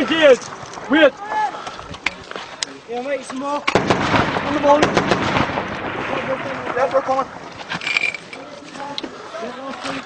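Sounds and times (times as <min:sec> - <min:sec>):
men's voices: 0:00.0 - 0:10.0.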